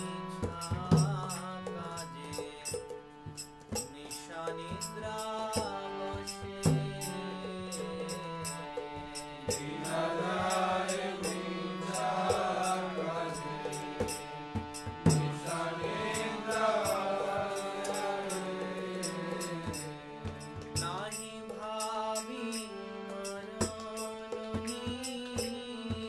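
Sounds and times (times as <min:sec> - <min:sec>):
high ticking percussion beat: 0:00.0 - 0:26.0
man singing devotional song: 0:00.0 - 0:26.0.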